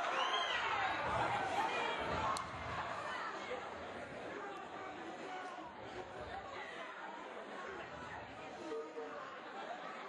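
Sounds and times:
crowd babble of voices: 0:00.0 - 0:10.0.

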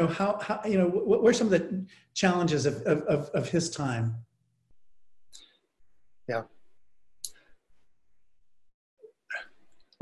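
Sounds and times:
man speaking: 0:00.0 - 0:04.2, 0:06.3 - 0:06.5.

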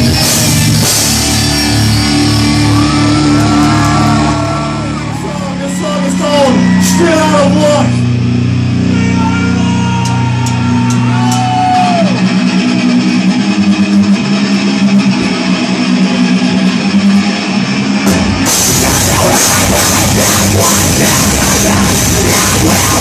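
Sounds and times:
heavy rock band playing live: 0:00.0 - 0:23.0
sliding guitar note: 0:18.1 - 0:23.0.

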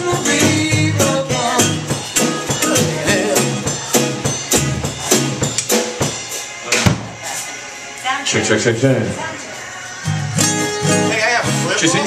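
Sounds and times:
man singing: 0:00.0 - 0:03.9
hard drum hit: 0:00.0 - 0:07.2
drum kit beat: 0:00.0 - 0:07.6, 0:10.0 - 0:12.0
live rock band playing: 0:00.0 - 0:07.8, 0:09.9 - 0:12.0.

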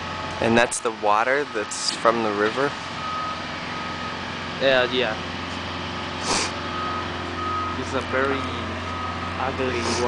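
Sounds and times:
truck reversing alarm beeping: 0:00.0 - 0:10.0.

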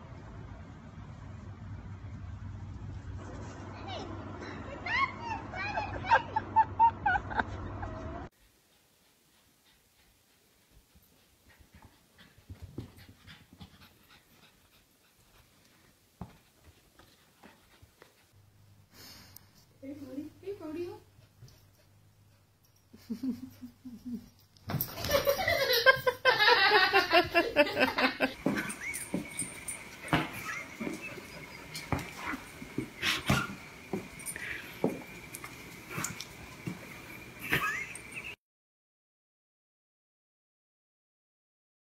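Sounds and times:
puppy panting: 0:08.4 - 0:20.0, 0:20.6 - 0:24.4, 0:27.2 - 0:38.4
animals scuffling on tile floor: 0:08.4 - 0:21.9, 0:24.0 - 0:38.4.

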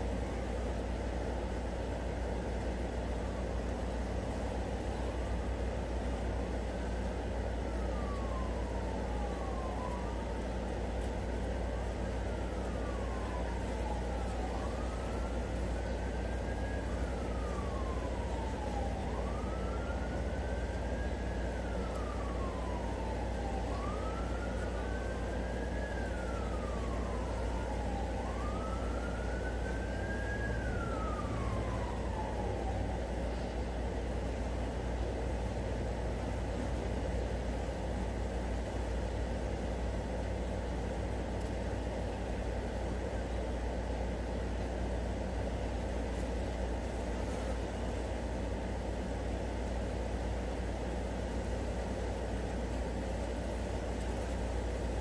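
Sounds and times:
distant siren wailing: 0:00.0 - 0:55.0.

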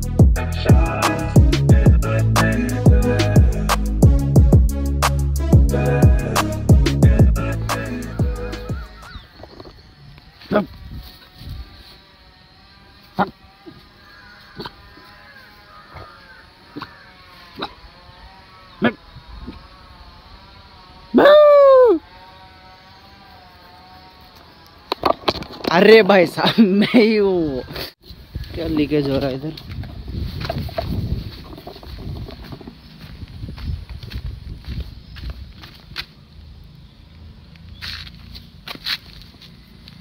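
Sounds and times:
footsteps on dry dirt: 0:27.6 - 0:36.4, 0:37.6 - 0:40.0.

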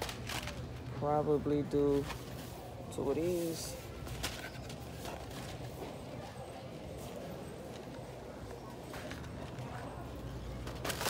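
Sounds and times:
low store hum: 0:00.0 - 0:11.0.

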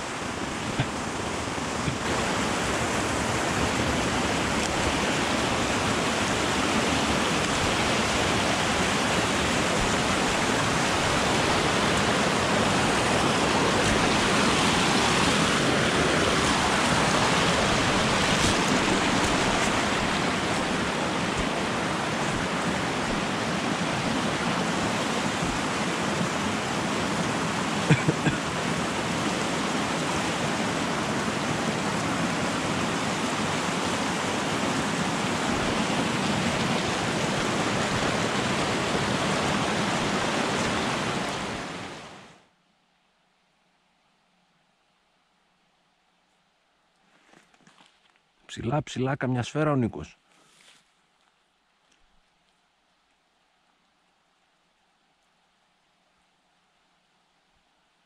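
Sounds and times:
stream rushing over rocks: 0:00.0 - 0:42.5.

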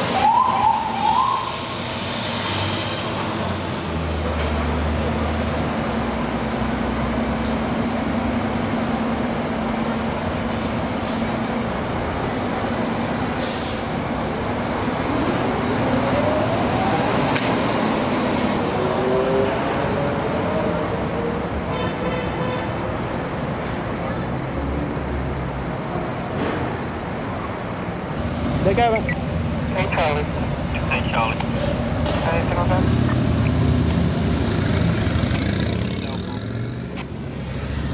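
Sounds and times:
road traffic: 0:00.0 - 0:37.9
engine rising in pitch: 0:15.2 - 0:21.5
vehicle engines idling: 0:19.6 - 0:37.9.

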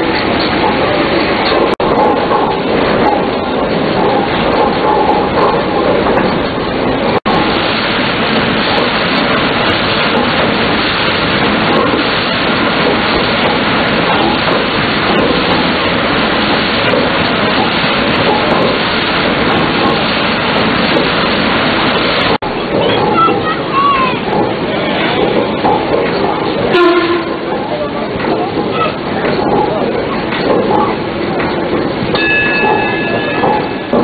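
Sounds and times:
paddle wheel splashing water: 0:00.0 - 0:34.0.

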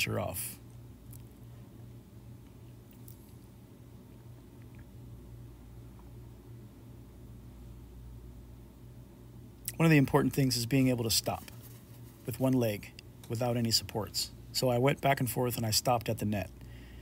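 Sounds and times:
faint electrical hum: 0:00.0 - 0:17.0.

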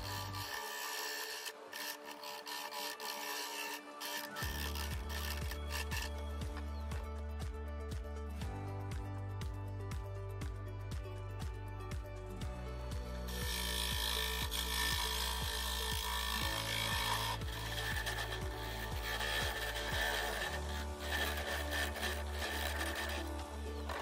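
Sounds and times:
gouge scraping wood on lathe: 0:00.0 - 0:06.4, 0:13.2 - 0:24.0
background music with steady beat: 0:00.0 - 0:24.0.

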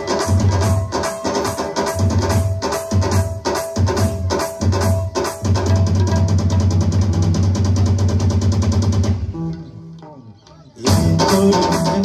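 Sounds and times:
rapid drum strokes: 0:00.0 - 0:09.6, 0:10.8 - 0:12.0.

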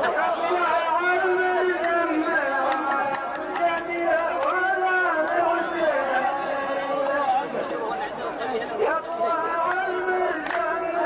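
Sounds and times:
men chanting: 0:00.0 - 0:11.0
men talking: 0:00.0 - 0:11.0.

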